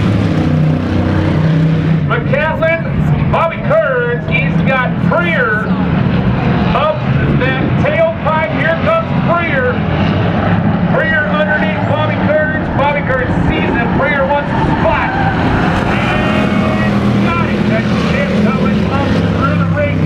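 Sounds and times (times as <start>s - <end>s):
race car engines: 0.0s - 20.0s.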